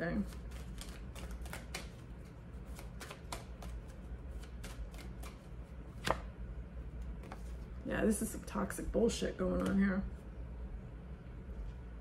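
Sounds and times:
cards being shuffled: 0.2 - 6.3, 7.0 - 7.8.

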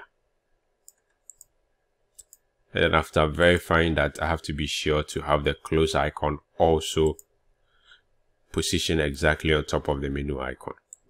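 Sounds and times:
faint computer mouse clicks: 0.8 - 1.5, 2.1 - 2.4.

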